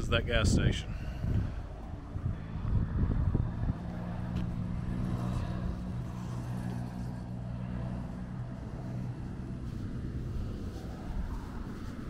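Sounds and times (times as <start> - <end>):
vehicle engine idling: 0.7 - 12.0.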